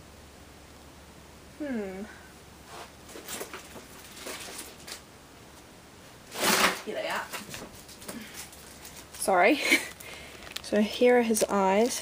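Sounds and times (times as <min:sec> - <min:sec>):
objects rustling and knocking: 0:02.7 - 0:05.1, 0:06.3 - 0:09.3.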